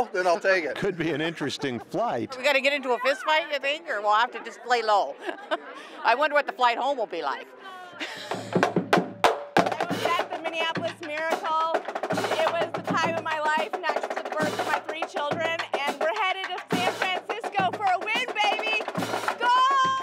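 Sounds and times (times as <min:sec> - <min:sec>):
voices shouting and cheering: 0:00.0 - 0:08.1, 0:09.7 - 0:20.0
drumline playing steady beat: 0:00.8 - 0:04.3, 0:08.0 - 0:20.0.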